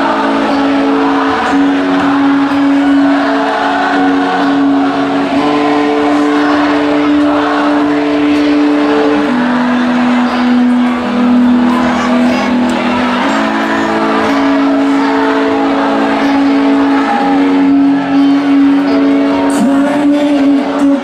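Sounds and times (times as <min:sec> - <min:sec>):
electric guitar: 0:00.0 - 0:21.0
live rock band playing: 0:00.0 - 0:21.0.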